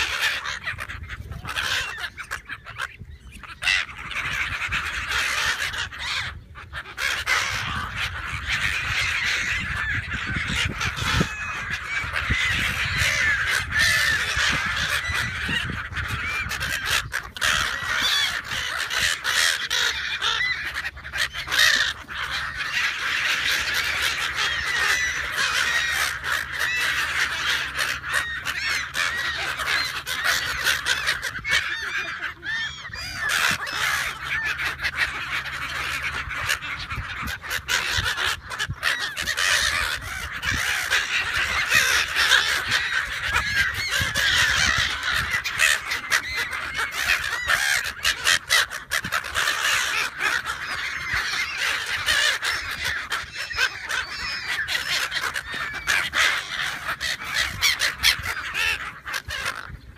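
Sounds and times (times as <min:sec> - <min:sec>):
gulls squawking: 0:00.0 - 0:59.9.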